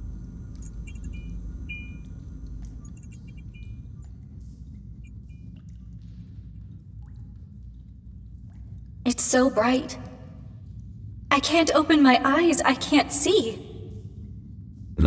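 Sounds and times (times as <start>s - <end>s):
high electronic beeps: 0.6s - 2.1s.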